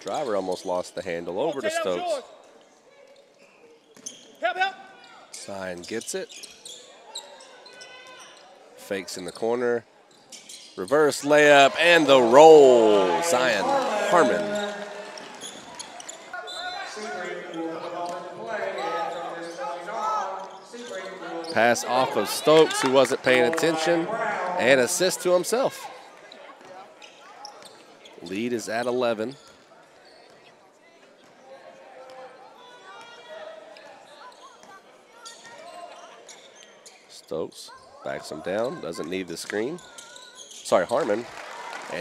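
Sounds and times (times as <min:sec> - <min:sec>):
voices echoing in gym: 0:00.0 - 0:42.0.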